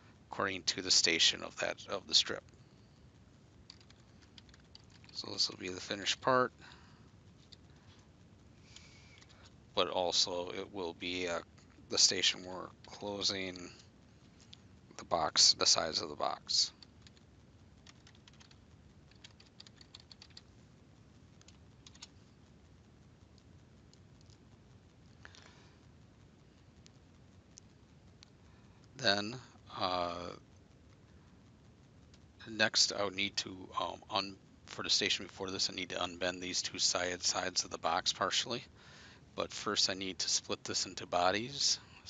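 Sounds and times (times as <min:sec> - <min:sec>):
faint keyboard typing: 0:03.6 - 0:09.6, 0:16.3 - 0:25.8
computer keyboard typing: 0:03.7 - 0:05.2, 0:16.8 - 0:17.2, 0:17.8 - 0:20.5, 0:21.4 - 0:22.2.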